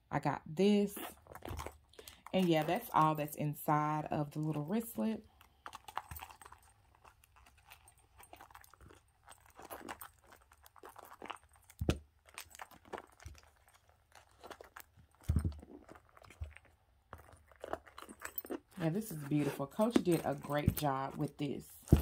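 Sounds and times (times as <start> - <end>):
bag rustling: 1.0 - 3.4, 4.5 - 22.0.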